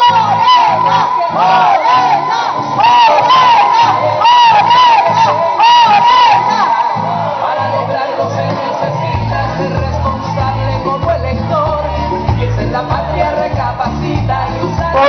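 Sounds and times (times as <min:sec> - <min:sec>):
crowd shouting and cheering: 0:00.0 - 0:15.0
loud music with low beat: 0:00.0 - 0:15.0.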